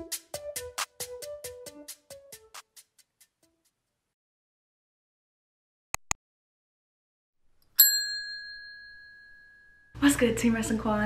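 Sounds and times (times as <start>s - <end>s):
mouse clicks: 6.0s - 6.2s
bright bell ding: 7.8s - 10.0s.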